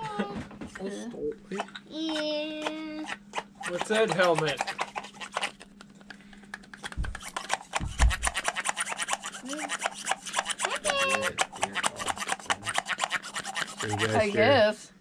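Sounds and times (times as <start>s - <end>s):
rasping scraping strokes: 3.0s - 5.6s, 6.9s - 14.5s
low thumps: 7.0s - 7.2s, 7.8s - 8.3s.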